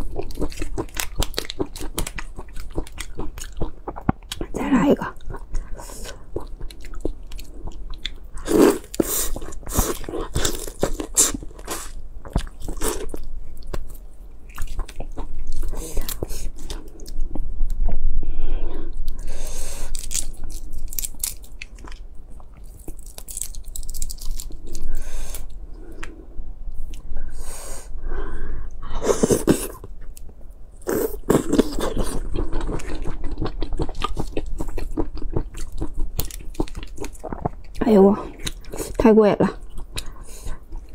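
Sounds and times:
crunching and wet chewing: 0.0s - 17.4s, 19.1s - 27.0s, 29.1s - 39.0s, 39.6s - 40.9s
shrimp shells cracking: 19.9s - 22.0s, 22.6s - 24.8s.

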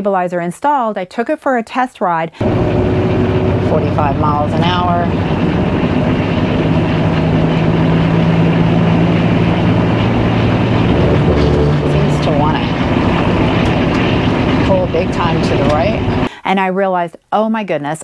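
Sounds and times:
engine and road noise in cab: 2.4s - 16.3s.

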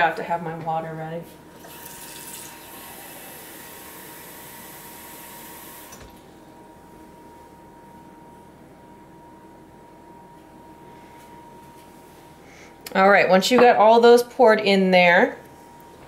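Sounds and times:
tap water filling a cup: 1.6s - 3.2s.

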